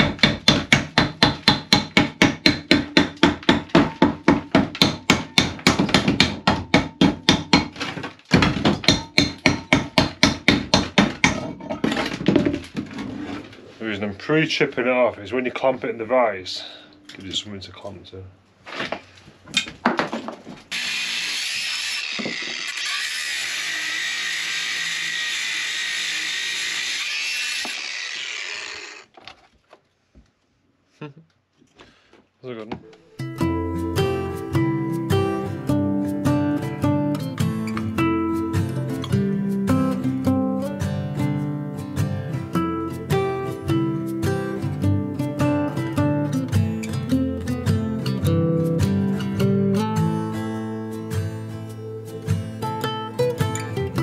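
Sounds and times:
angle grinder grinding metal: 20.7 - 29.1
acoustic guitar music: 32.8 - 54.0.

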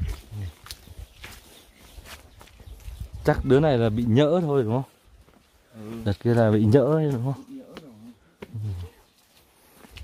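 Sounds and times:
footsteps on dirt path: 0.0 - 10.0.

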